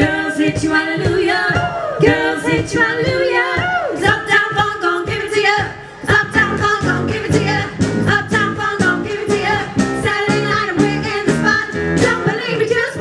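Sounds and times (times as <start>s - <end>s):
drums steady beat: 0.0s - 13.0s
women singing in close harmony: 0.0s - 13.0s
live funk band: 6.0s - 13.0s.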